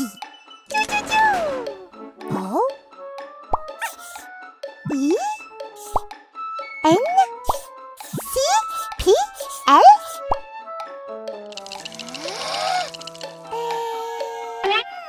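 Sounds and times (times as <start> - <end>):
light children's music: 0.0 - 15.0.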